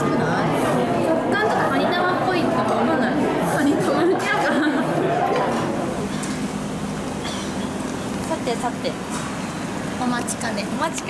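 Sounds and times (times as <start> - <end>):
chatter of diners: 0.0 - 11.0
people conversing: 0.0 - 11.0.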